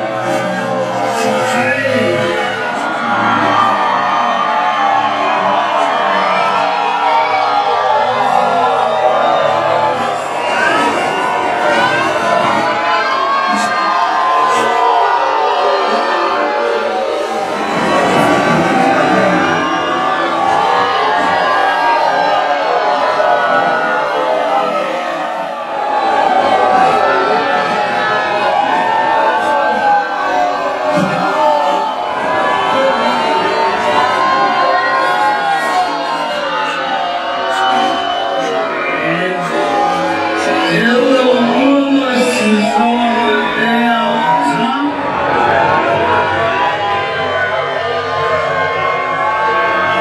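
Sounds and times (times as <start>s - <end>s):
crowd cheering and shouting: 0.0s - 50.0s.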